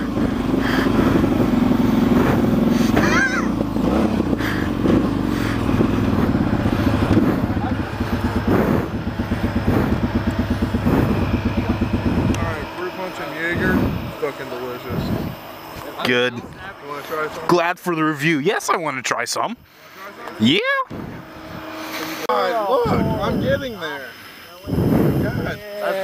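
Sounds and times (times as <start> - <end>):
vehicle engine driving: 0.0 - 25.6
people laughing: 2.2 - 3.6, 4.4 - 10.1.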